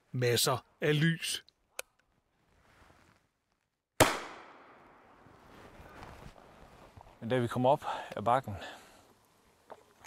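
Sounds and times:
flare fired with sharp bang: 4.0s - 5.0s.

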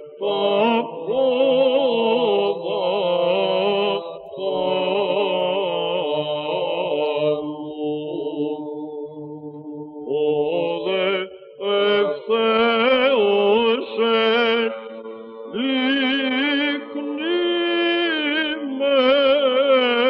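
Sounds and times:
solo chant singing: 0.0s - 20.0s.

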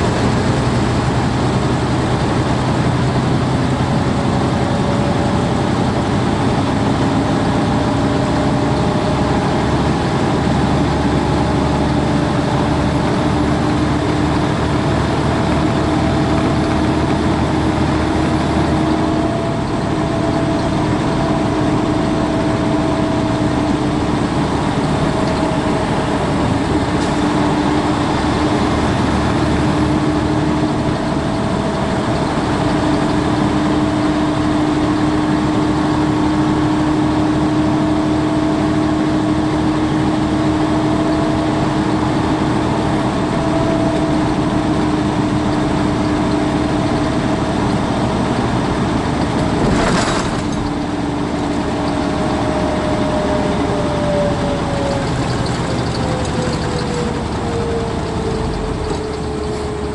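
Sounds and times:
constant hum: 0.0s - 59.9s
road noise: 0.0s - 59.9s
truck engine drone: 0.0s - 59.9s.

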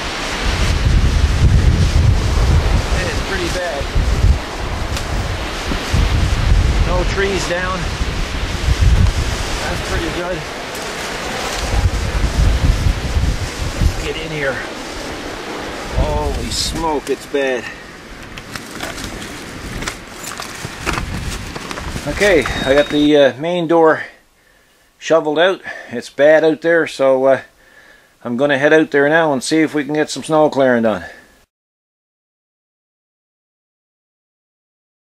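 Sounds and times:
wind buffeting microphone: 0.0s - 23.2s
scrapes and crackles: 9.0s - 12.2s, 18.2s - 23.0s.

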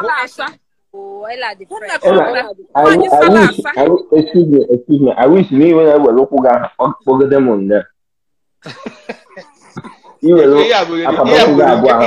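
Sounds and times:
person coughing and clearing throat: 8.6s - 10.2s.

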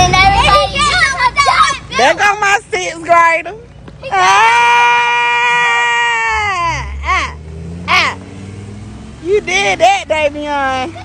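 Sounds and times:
bus engine rumble: 0.0s - 11.0s
person shouting: 4.1s - 8.2s
person whooping: 4.2s - 8.2s.

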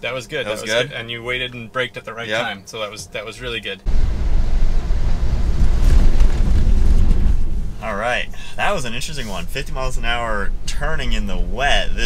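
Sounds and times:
road and tyre noise: 3.9s - 12.0s
wind buffeting microphone: 3.9s - 12.0s.

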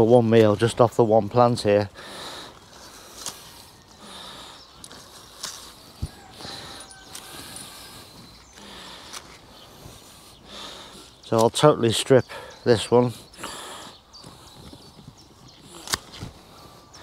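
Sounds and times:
leaves rustling: 0.0s - 12.1s, 12.7s - 17.0s
broccoli spears snapping: 3.1s - 3.5s, 15.7s - 16.4s.

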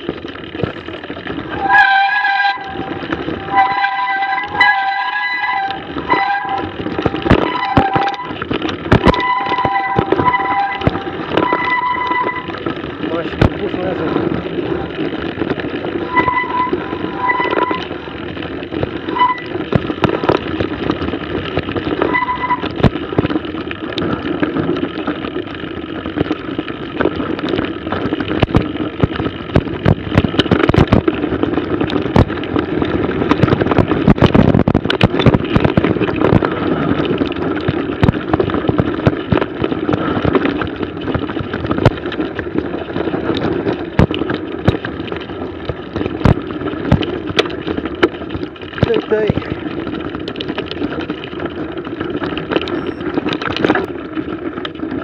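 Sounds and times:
bike knocking and rattling: 0.0s - 55.0s
wind rushing on microphone: 0.0s - 55.0s.

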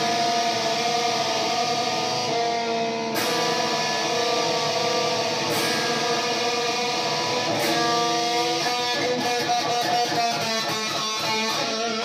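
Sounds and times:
electric guitar sustained notes: 0.0s - 12.0s.

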